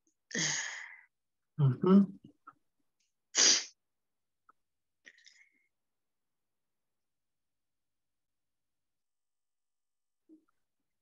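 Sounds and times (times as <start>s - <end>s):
person murmuring: 1.6s - 2.2s
sharp burst of breath: 3.3s - 3.8s.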